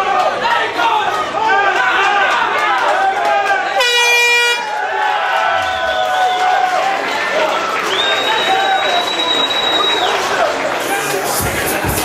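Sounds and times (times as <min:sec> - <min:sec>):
crowd shouting: 0:00.0 - 0:12.0
horn blast: 0:03.8 - 0:04.7.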